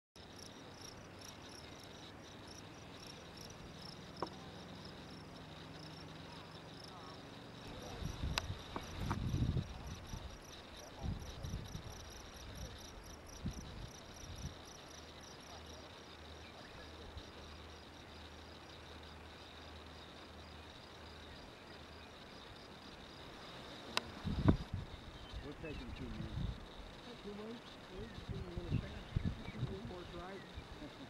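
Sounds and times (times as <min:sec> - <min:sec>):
crickets chirping: 0:00.2 - 0:31.0
thumps on microphone: 0:08.7 - 0:09.4.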